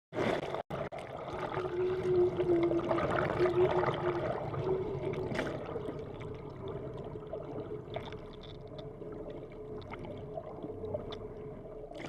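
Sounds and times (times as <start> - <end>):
churning water underwater: 0.1 - 12.0.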